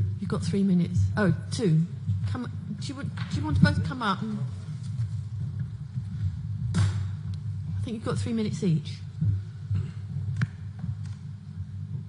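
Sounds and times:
low steady hum: 0:00.0 - 0:12.0
soft irregular thumps: 0:02.0 - 0:12.0.

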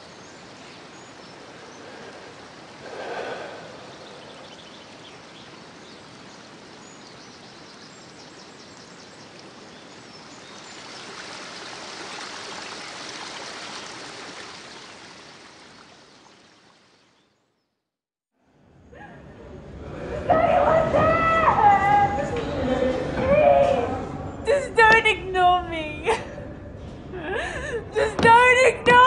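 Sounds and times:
stream water rushing: 0:00.0 - 0:17.2.

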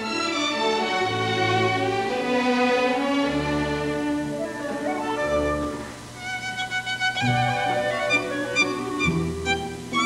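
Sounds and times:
orchestra playing ballet music: 0:00.0 - 0:10.0.

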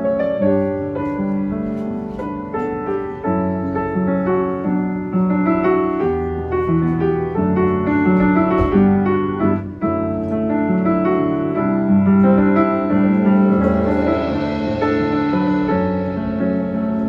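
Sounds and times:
upright piano melody: 0:00.0 - 0:17.0.

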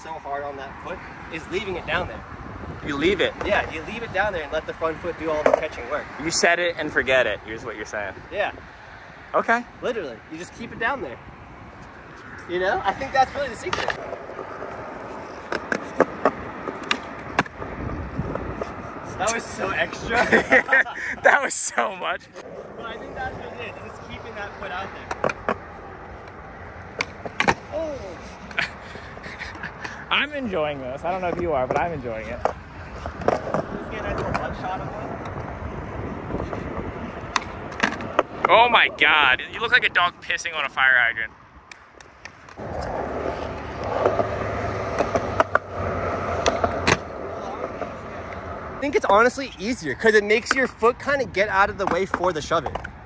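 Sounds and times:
skateboard wheels rolling on concrete: 0:00.0 - 0:09.2, 0:09.8 - 0:53.0
skateboard clacking on ground: 0:05.3 - 0:05.8, 0:13.6 - 0:17.7, 0:25.0 - 0:28.6, 0:31.0 - 0:35.5, 0:36.4 - 0:38.6, 0:41.7 - 0:48.5, 0:50.3 - 0:50.8, 0:51.4 - 0:53.0.

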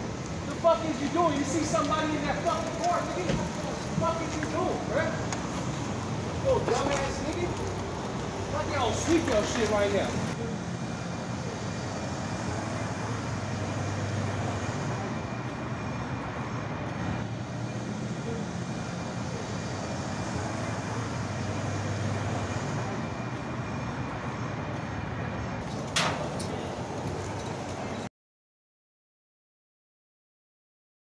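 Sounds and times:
vehicle engine rumble: 0:00.0 - 0:28.1.

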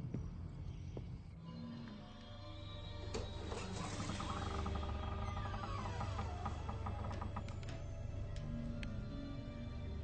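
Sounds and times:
eerie drama soundtrack music: 0:00.0 - 0:10.0.

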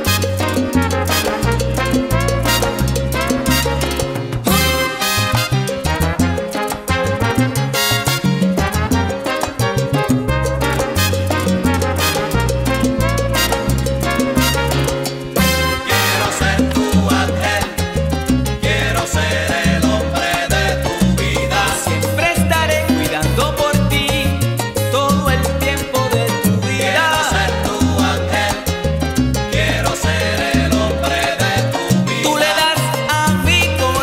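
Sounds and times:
salsa band playing: 0:00.0 - 0:34.0.

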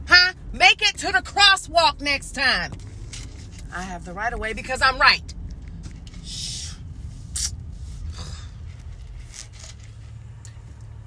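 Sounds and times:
car engine idling: 0:00.0 - 0:11.0
low cabin hum: 0:00.0 - 0:11.0
short scraping rustles: 0:05.8 - 0:10.2.

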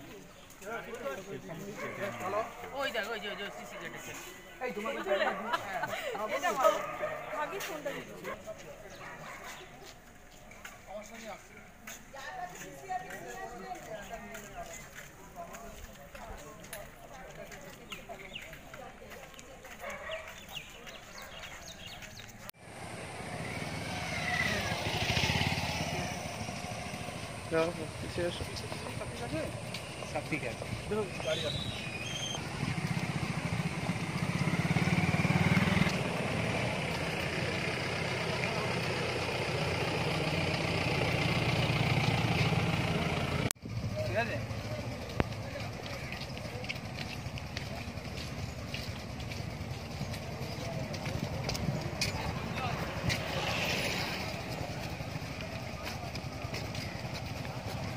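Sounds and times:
group footsteps: 0:00.0 - 0:23.5, 0:26.3 - 0:34.4, 0:35.8 - 0:39.2, 0:44.6 - 0:57.9
walking sticks tapping on pavement: 0:00.1 - 0:04.4, 0:05.8 - 0:23.0, 0:26.5 - 0:34.4, 0:44.0 - 0:57.9
motorcycle engine running: 0:22.6 - 0:57.9.

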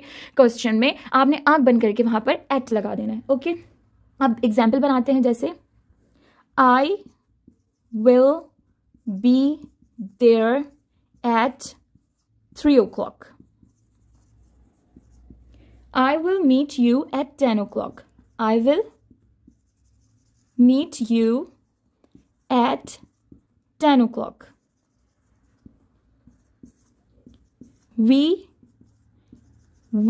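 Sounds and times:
marker scratching on whiteboard: 0:01.0 - 0:30.0.

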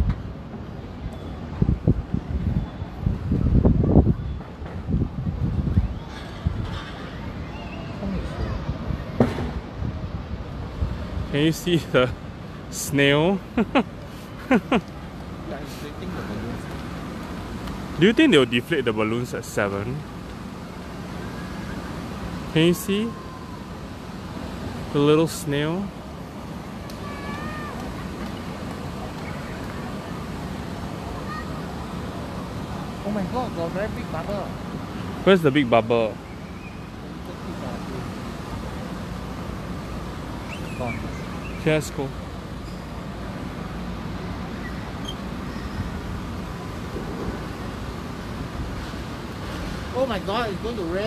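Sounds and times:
faint distant voices: 0:00.6 - 0:12.1, 0:15.4 - 0:44.5
wind buffeting microphone: 0:01.5 - 0:11.4.

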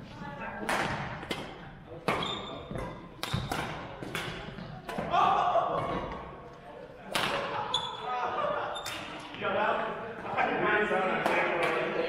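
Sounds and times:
racket hitting shuttlecock: 0:00.6 - 0:05.1, 0:07.1 - 0:07.7
shoe squeak on court floor: 0:02.1 - 0:03.5, 0:07.7 - 0:08.1.

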